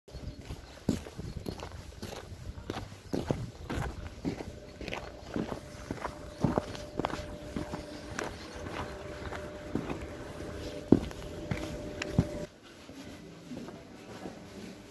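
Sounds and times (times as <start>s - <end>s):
footsteps on snow and slush: 0.2s - 12.5s.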